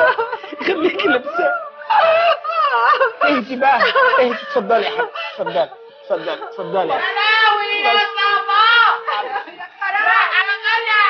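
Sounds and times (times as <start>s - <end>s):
high-pitched mourning wail: 0.0s - 11.0s.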